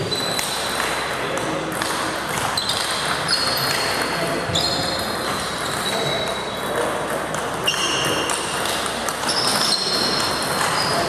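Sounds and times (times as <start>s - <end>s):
chatter in sports hall: 0.0s - 11.0s
table tennis balls clicking: 0.2s - 11.0s.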